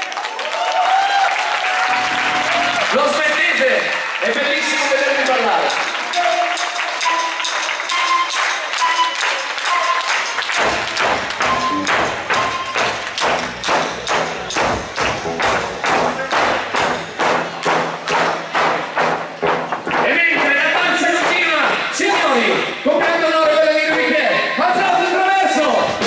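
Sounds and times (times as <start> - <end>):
folk band playing dance music: 1.9 - 26.0
solo melody instrument: 10.6 - 18.2.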